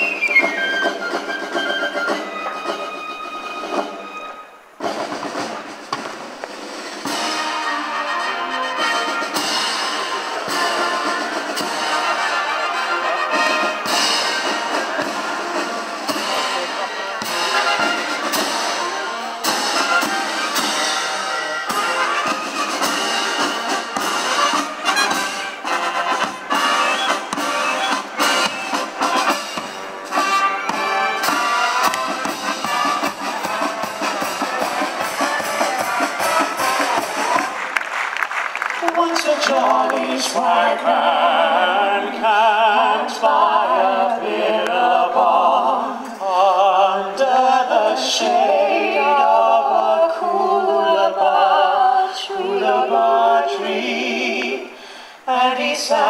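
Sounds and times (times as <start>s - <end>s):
military marching band playing: 0.0s - 41.5s
steady drum beat: 4.8s - 7.9s, 13.4s - 38.2s.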